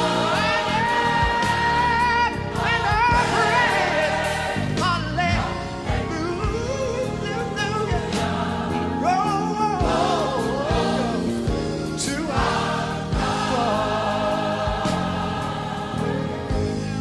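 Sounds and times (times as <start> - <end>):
band accompaniment: 0.0 - 17.0
gospel choir singing: 0.0 - 17.0
lead voice singing: 0.0 - 17.0
steady drum beat: 0.0 - 17.0.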